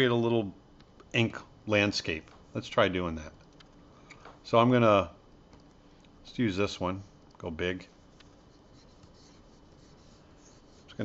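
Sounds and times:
stylus scratching tablet surface: 7.9s - 11.0s.

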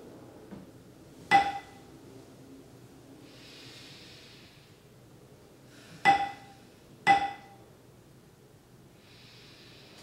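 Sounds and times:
metal meditation bell ring: 1.3s - 1.8s, 7.1s - 7.6s
long soft breath: 3.2s - 4.9s, 9.0s - 10.0s.

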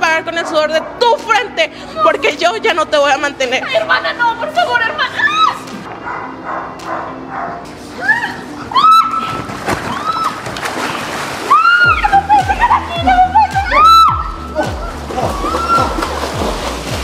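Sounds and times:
pool water splashing: 3.8s - 17.0s
high-pitched cries: 11.5s - 16.1s
music with steady beat: 11.9s - 17.0s.

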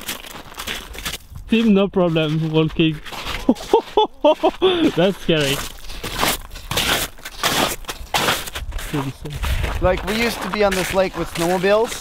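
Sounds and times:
boots crunching on ice: 0.0s - 12.0s.

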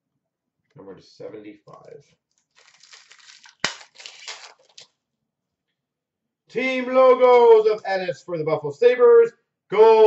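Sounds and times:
foil wrapper tearing and crinkling: 2.3s - 5.0s.

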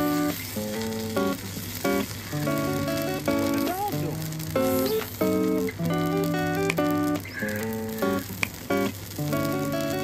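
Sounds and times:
batter sizzling in a pan: 0.0s - 10.0s
lofi music with plucked notes: 0.0s - 10.0s.

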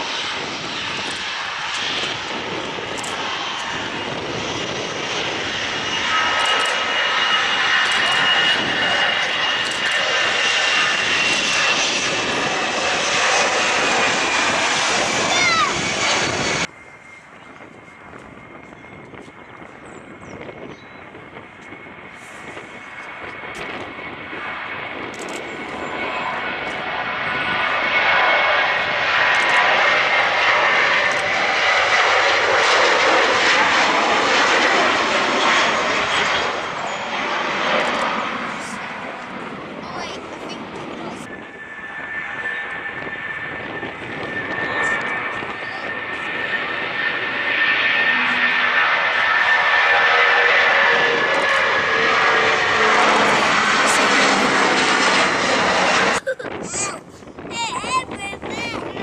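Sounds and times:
jet airliner taking off: 0.0s - 59.0s
jet engines high whine: 0.0s - 59.0s.

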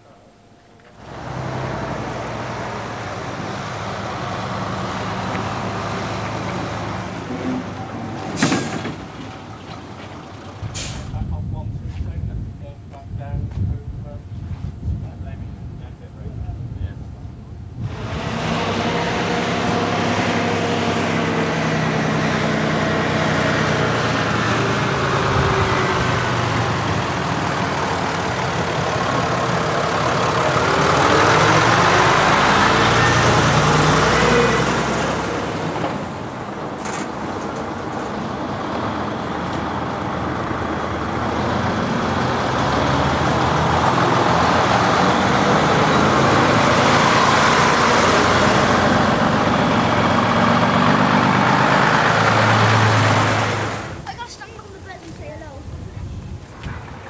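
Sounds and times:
coach engine pulling past: 1.0s - 11.2s, 17.8s - 54.3s
diesel truck driving past: 1.0s - 11.6s, 17.8s - 54.3s.

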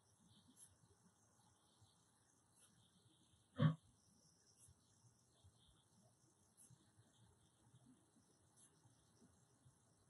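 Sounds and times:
faint high-pitched hiss: 0.0s - 10.0s.

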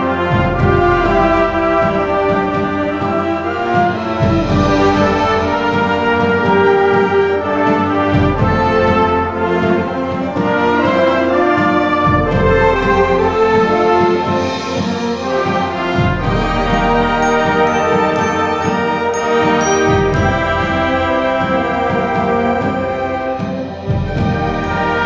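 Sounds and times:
concert band playing chords: 14.1s - 22.8s
short high notes: 16.7s - 21.0s.

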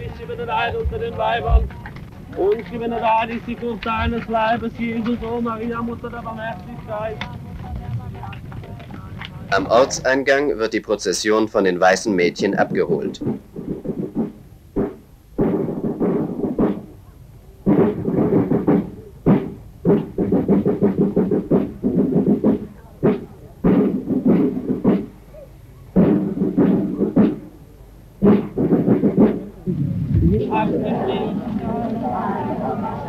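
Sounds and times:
sharp drum beat: 0.0s - 10.1s, 12.2s - 17.0s, 17.6s - 27.6s, 28.2s - 31.4s.

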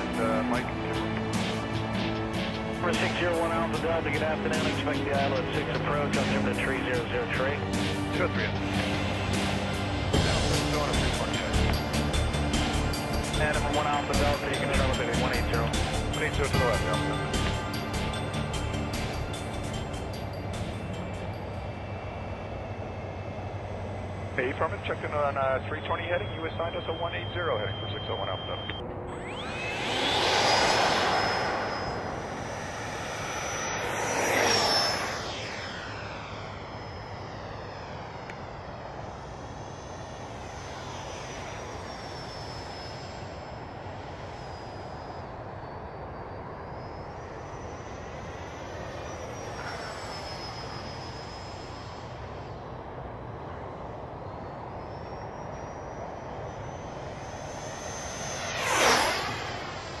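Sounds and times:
model jet fan whine: 0.0s - 60.0s.

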